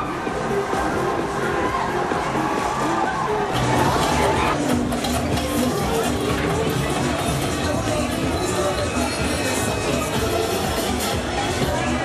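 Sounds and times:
loud fairground music: 0:00.0 - 0:12.0.

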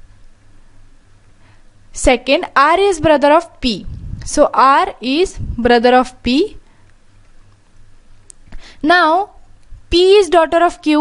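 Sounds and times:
faint low hum: 0:00.0 - 0:11.0
person speaking: 0:02.0 - 0:06.6, 0:08.8 - 0:11.0.

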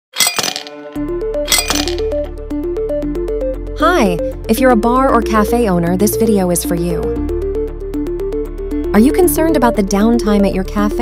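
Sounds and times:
ice cubes clinking in glass: 0:00.2 - 0:00.7, 0:01.5 - 0:02.0.

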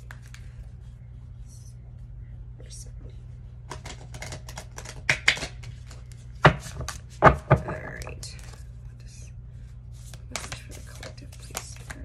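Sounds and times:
cards shuffling clicks: 0:03.7 - 0:07.2, 0:10.0 - 0:12.0.

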